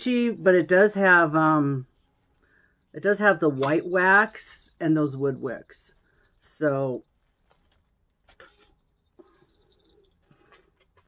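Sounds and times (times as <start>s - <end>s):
bubble wrap rustling: 7.0s - 8.8s.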